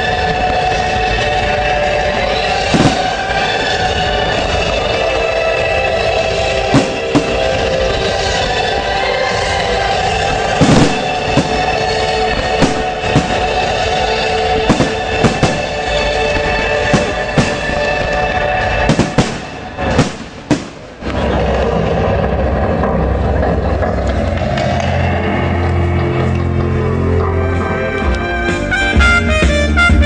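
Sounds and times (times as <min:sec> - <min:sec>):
music with heavy bass: 0:00.0 - 0:20.2, 0:20.9 - 0:30.0
firework shells bursting: 0:02.7 - 0:03.8, 0:06.8 - 0:07.8, 0:10.5 - 0:21.1.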